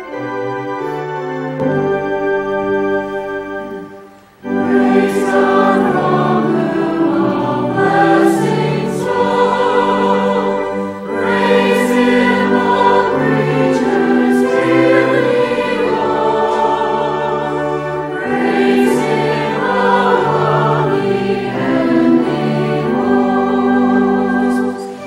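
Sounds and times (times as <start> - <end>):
church choir singing a hymn: 4.4 - 25.0.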